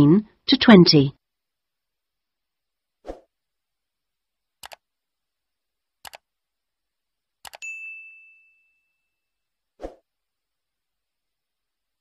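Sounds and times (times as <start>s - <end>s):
bell ding: 7.6s - 9.4s.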